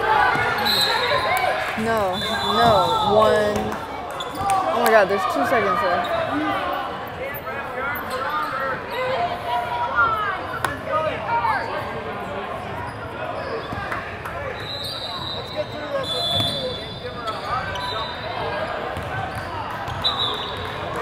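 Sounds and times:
spectators' voices and calls: 0:00.0 - 0:21.0.

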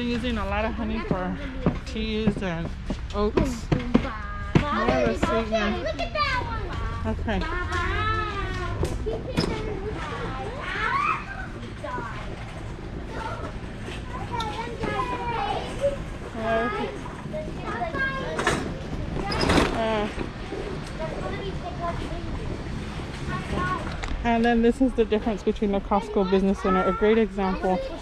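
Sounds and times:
young children talking: 0:00.0 - 0:28.0.

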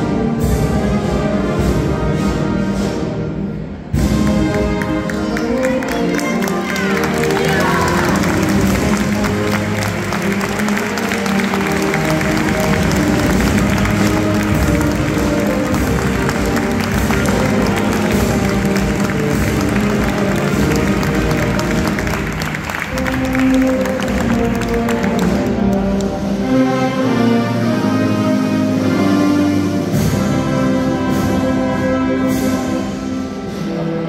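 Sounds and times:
music with long held notes: 0:00.0 - 0:34.0
crowd applauding: 0:04.3 - 0:26.4.

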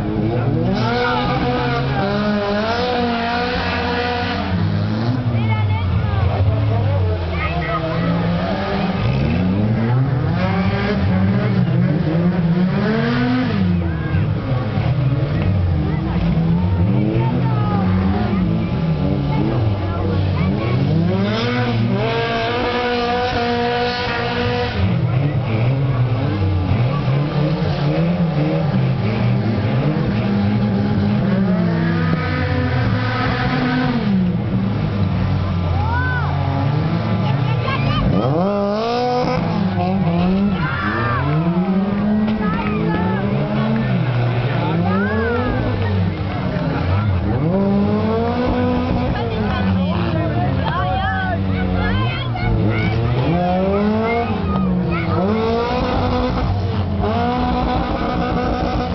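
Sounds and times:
stock car engines revving: 0:00.0 - 0:58.9.

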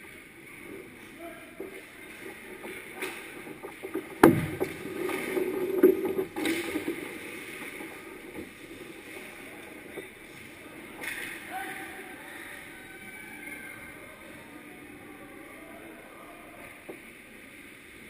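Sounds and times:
skates scraping on ice: 0:00.0 - 0:12.3
sticks and puck knocking: 0:01.5 - 0:11.4.

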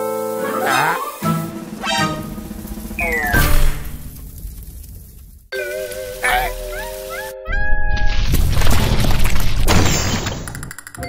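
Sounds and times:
rising pitched cartoon call: 0:00.4 - 0:02.1, 0:06.2 - 0:07.4
loud rough rumbling: 0:01.5 - 0:05.5.

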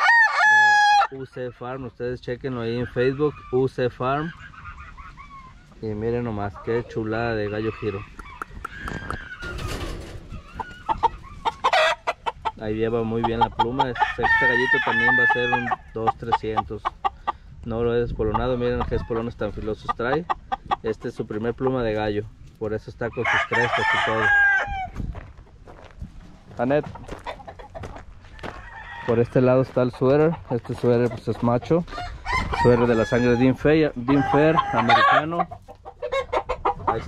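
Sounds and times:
chickens clucking: 0:00.9 - 0:37.0.

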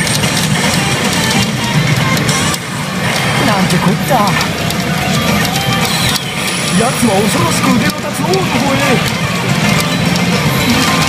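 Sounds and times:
rock music with guitar and drums: 0:00.0 - 0:11.0.

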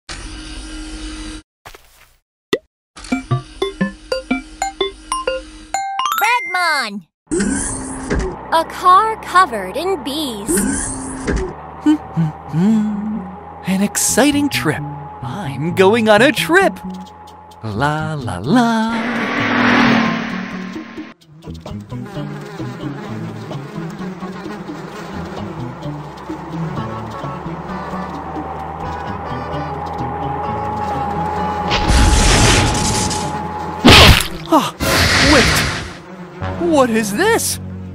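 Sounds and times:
cartoon bees buzzing: 0:03.0 - 0:05.7, 0:07.4 - 0:37.6.

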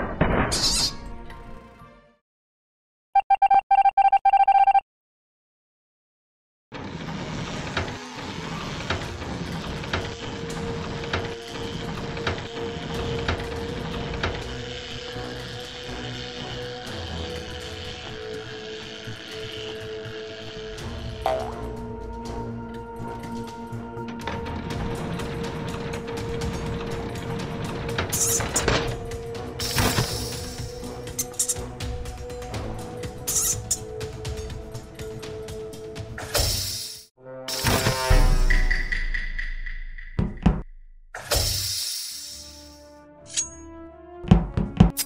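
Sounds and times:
ratcheting gear clicking: 0:08.9 - 0:21.4, 0:24.0 - 0:31.8, 0:32.5 - 0:34.5
background music held tone: 0:09.4 - 0:45.0.

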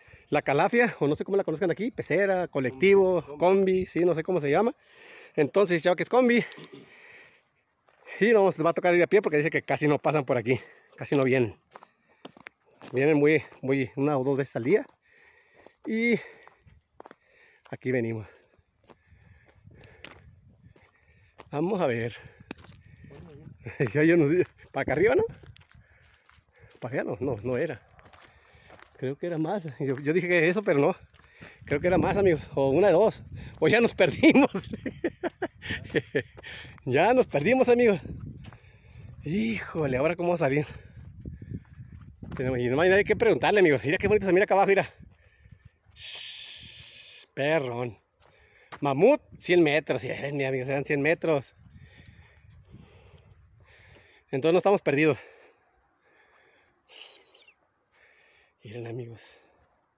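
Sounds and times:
faint footsteps: 0:06.6 - 0:08.2, 0:10.8 - 0:13.7, 0:14.8 - 0:31.9, 0:34.8 - 0:39.7, 0:40.7 - 0:42.7, 0:48.1 - 0:48.9.

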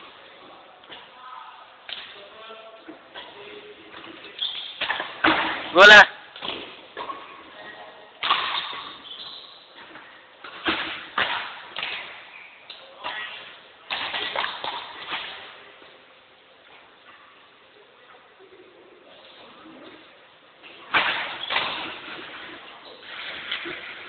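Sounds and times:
rackets hitting shuttlecock: 0:08.2 - 0:12.3.

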